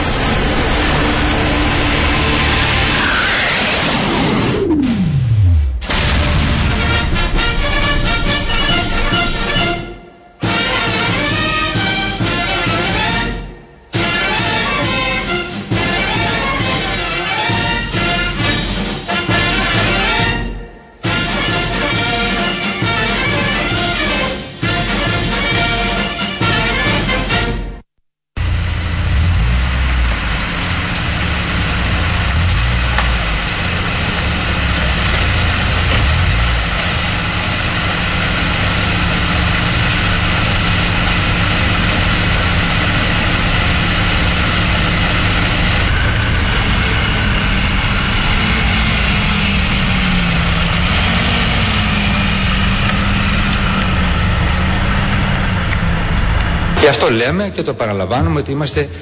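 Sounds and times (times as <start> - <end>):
low wavering drone: 0.0 - 10.4, 28.4 - 56.8
car engine running: 0.0 - 11.4, 28.4 - 57.3
street traffic noise: 28.4 - 57.0.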